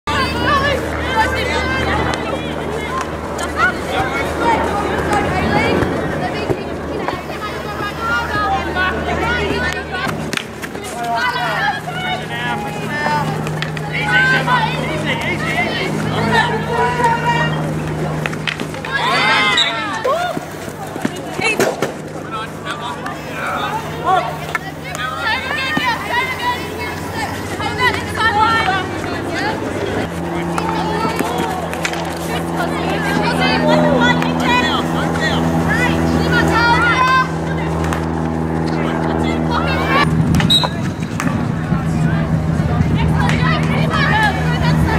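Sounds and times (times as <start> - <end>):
faint voices calling out: 0.1 - 44.9
steady low hum: 0.1 - 44.9.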